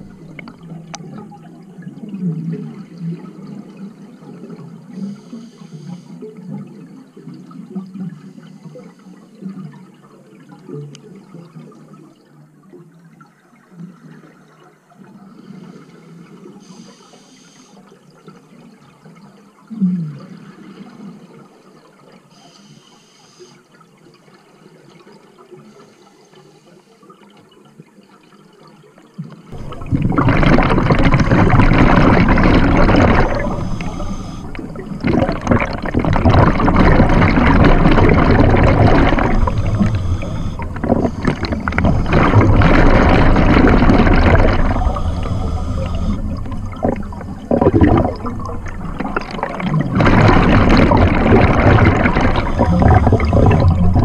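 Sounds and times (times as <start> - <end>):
scuba regulator bubbles rushing: 0.0 - 4.6, 29.5 - 54.0
faint underwater noise: 0.0 - 11.2, 29.4 - 54.0.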